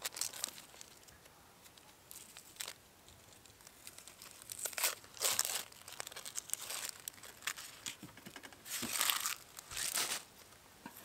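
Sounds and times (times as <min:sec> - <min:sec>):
onion skin crackling as peeled: 0:00.0 - 0:10.6.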